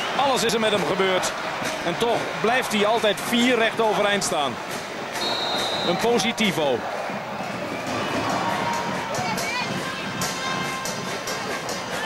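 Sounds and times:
crowd shouts and calls: 0.0 - 12.0
crowd voices din: 0.0 - 12.0.

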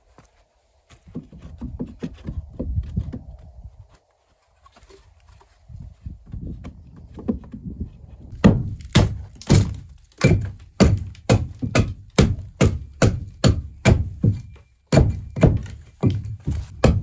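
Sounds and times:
hatchet chopping wood: 8.3 - 17.0.

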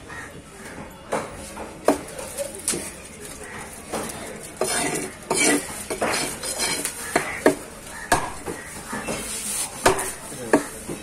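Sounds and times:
cleaver chopping on wooden block: 7.1 - 8.6, 9.8 - 11.0.

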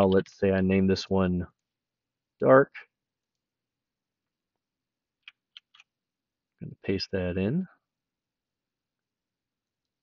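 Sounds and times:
computer mouse and key clicks: 5.2 - 6.0.

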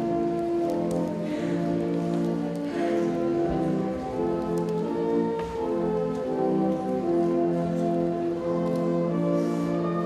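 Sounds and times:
church organ playing a hymn: 0.0 - 10.0.

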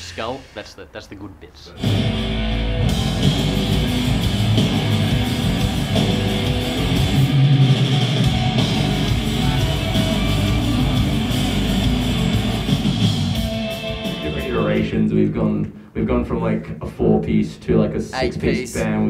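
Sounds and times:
electric guitar: 1.8 - 14.6
rock band playing: 1.8 - 14.8
deep bass: 1.8 - 16.4.

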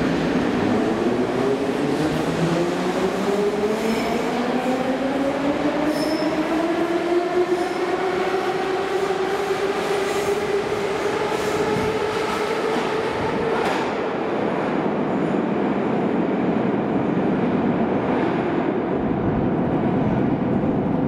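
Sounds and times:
train rumble in tunnel: 0.0 - 21.0
train wheels on rails: 0.0 - 21.0.

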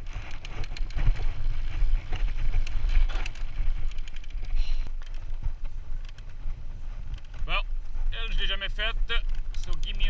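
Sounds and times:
bike rolling on dirt trail: 0.0 - 10.0
wind rumbling on microphone: 0.0 - 10.0.

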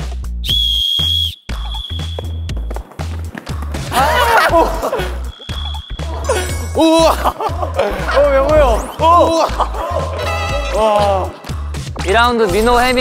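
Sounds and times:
music with steady beat: 0.0 - 13.0
whistle blast: 0.4 - 2.6, 5.2 - 6.2.

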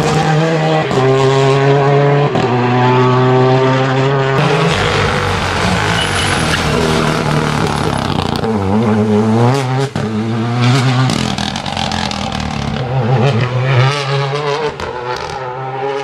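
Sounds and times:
rally car engine revving: 0.0 - 16.0
sharp exhaust cracks: 4.4 - 8.8.

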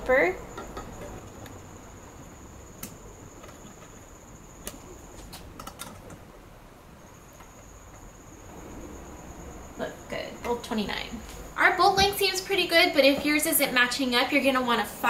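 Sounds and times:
faint high-pitched whine: 0.0 - 15.0.

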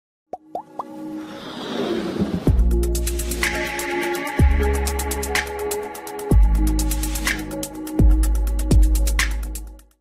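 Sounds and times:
music: 0.4 - 10.0.

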